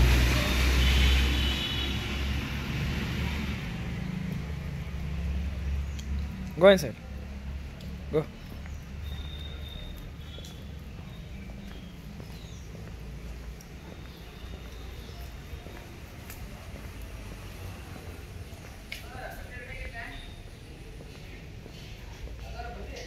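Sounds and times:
footsteps on wet stone: 0:02.8 - 0:23.0.

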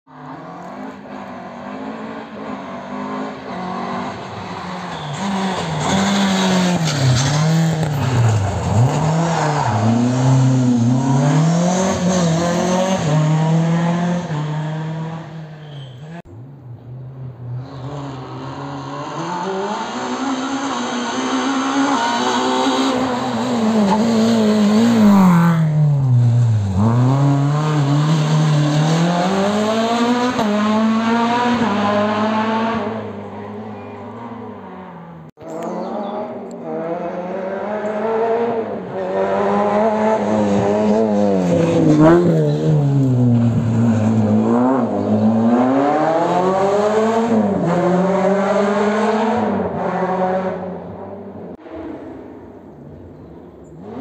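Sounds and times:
rally car engine revving: 0:00.2 - 0:16.3, 0:17.4 - 0:52.4.

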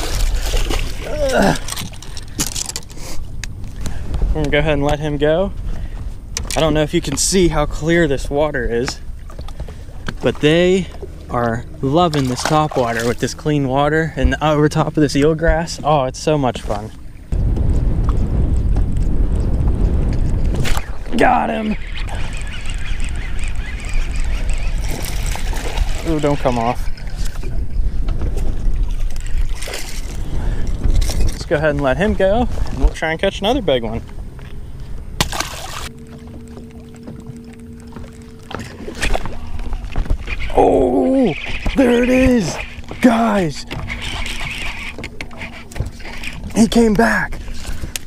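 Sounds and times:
water lapping: 0:00.0 - 0:04.4, 0:05.0 - 0:17.4, 0:20.5 - 0:48.0
wind buffeting microphone: 0:00.0 - 0:48.0.

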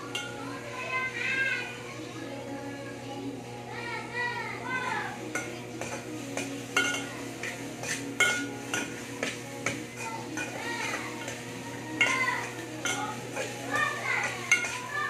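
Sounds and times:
metal spoon clinking in a pot: 0:00.1 - 0:00.4, 0:05.3 - 0:15.0.

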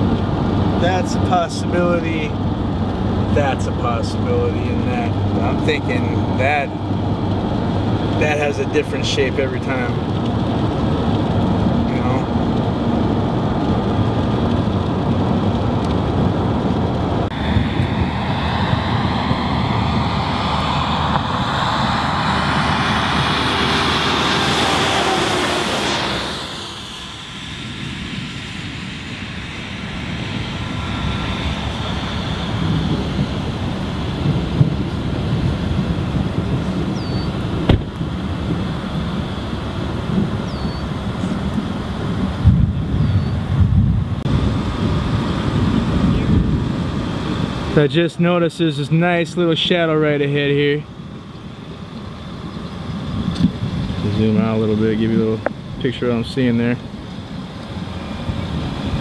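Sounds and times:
road and vehicle noise: 0:00.0 - 0:59.0
wind rumble on microphone: 0:00.0 - 0:59.0
broad whoosh: 0:17.2 - 0:35.4.

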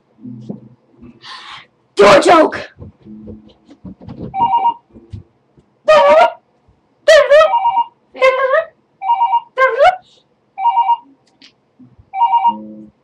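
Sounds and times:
electronic ringing beeps: 0:04.4 - 0:04.8, 0:07.5 - 0:07.9, 0:09.0 - 0:09.6, 0:10.6 - 0:11.1, 0:12.2 - 0:12.8.

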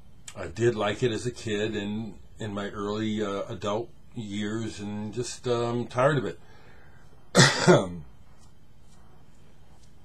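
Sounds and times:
man coughing: 0:07.4 - 0:08.0.

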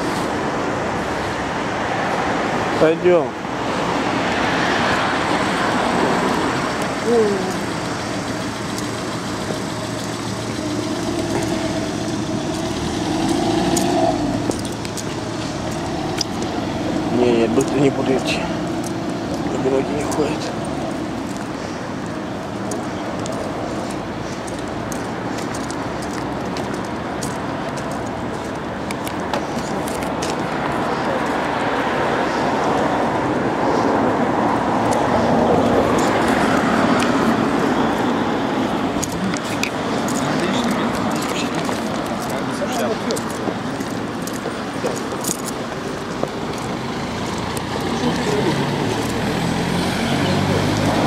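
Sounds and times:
cars passing: 0:00.0 - 0:51.0
people talking: 0:07.0 - 0:07.8, 0:17.1 - 0:18.6, 0:19.5 - 0:20.6, 0:39.1 - 0:43.5, 0:47.8 - 0:48.9.

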